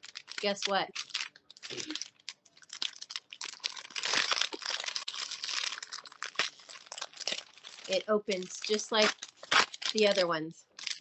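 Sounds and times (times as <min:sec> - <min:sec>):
plastic wrapper crinkling: 0:00.0 - 0:11.0.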